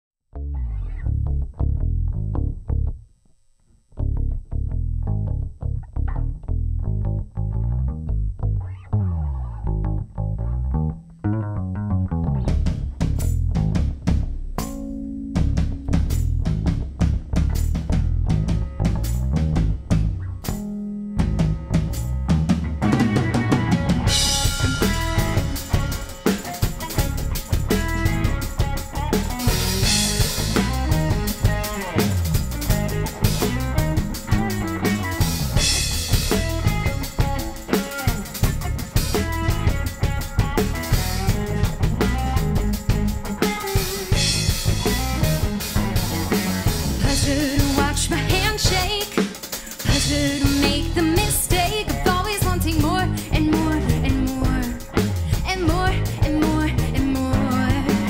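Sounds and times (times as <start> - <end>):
rock band playing: 12.4 - 58.0.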